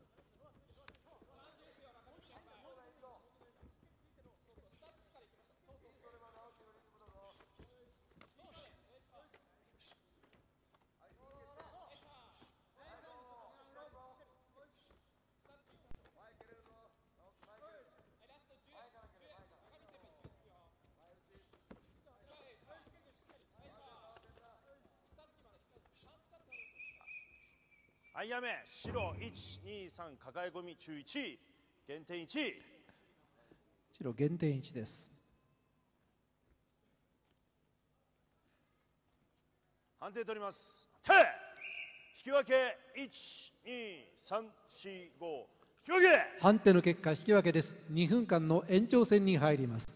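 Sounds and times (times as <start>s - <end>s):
dull thuds of strikes: 28.8s - 29.9s.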